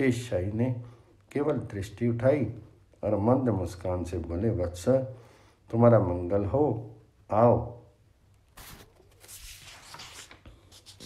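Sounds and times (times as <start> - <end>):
paper rustling: 8.5 - 11.0.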